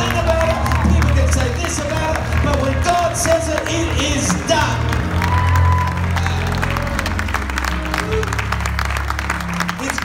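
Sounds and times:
congregation applauding: 0.0 - 10.0
electric keyboard chords: 0.0 - 10.0.

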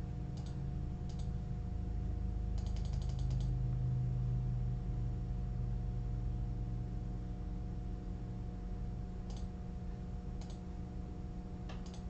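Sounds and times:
steady low hum: 0.0 - 12.0
mouse button clicking rapidly: 0.4 - 1.3, 2.6 - 3.6, 9.3 - 9.5, 10.4 - 10.6, 11.8 - 12.0.

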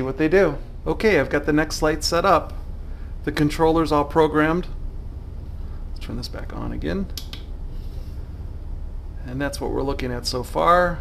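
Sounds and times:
steady low background hum: 0.0 - 11.0.

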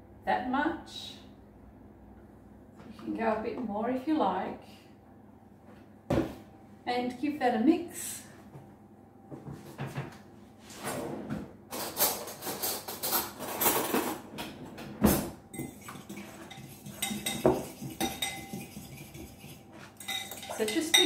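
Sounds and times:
fork clinking against ceramic bowl: 15.6 - 21.0.

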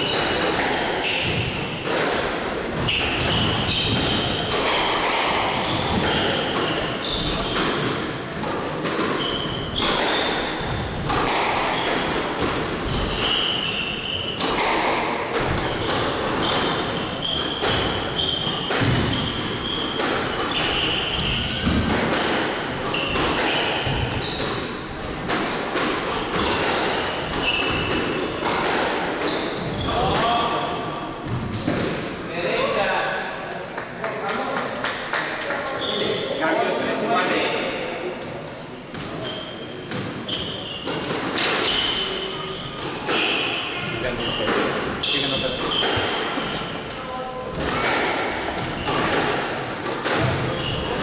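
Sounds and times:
sneakers squeaking on wooden floor: 2.7 - 8.0, 9.0 - 14.8, 15.4 - 22.0, 22.8 - 24.8, 26.1 - 31.6, 35.7 - 36.5, 38.2 - 49.4, 50.2 - 51.0.

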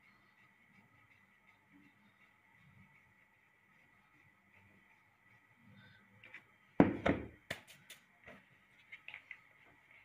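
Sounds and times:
rolling pin knocking: 6.8 - 7.4
dough thumping on counter: 6.8 - 7.8.

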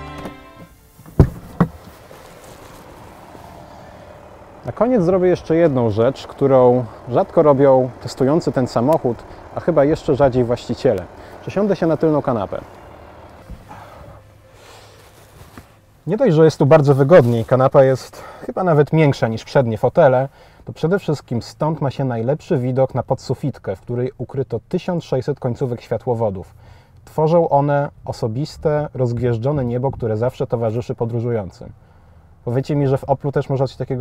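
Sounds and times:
rustling on leather seat: 0.6 - 6.0, 10.4 - 18.0
car door latch knocks: 1.1 - 1.8.

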